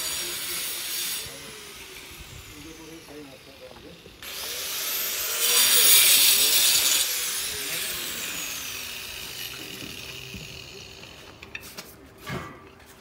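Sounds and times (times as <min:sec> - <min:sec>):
angle grinder cutting brick: 0:00.0 - 0:11.5.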